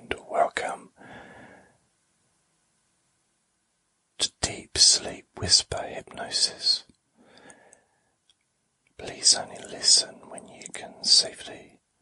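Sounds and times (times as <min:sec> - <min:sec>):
man whispering: 0:00.0 - 0:01.0, 0:04.2 - 0:06.9, 0:09.0 - 0:11.8.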